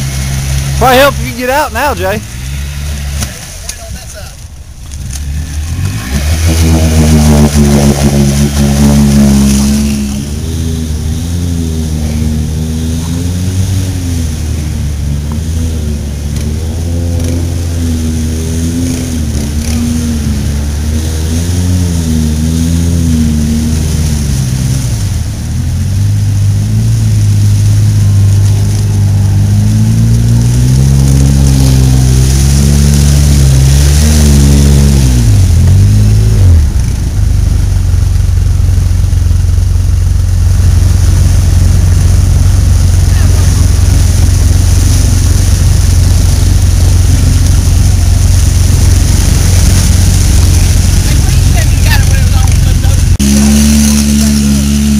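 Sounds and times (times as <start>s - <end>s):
engine revving hard: 5.1s - 25.2s, 26.2s - 37.6s, 40.4s - 54.9s.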